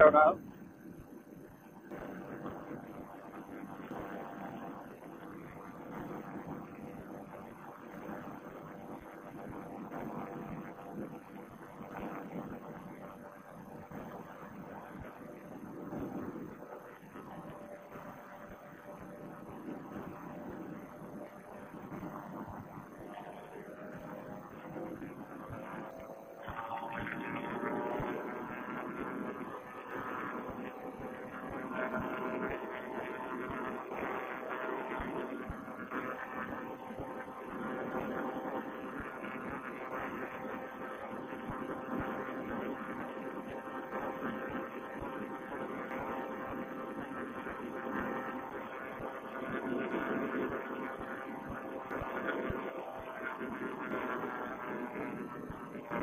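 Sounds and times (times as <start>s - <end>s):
paramotor engine droning: 0.0s - 56.0s.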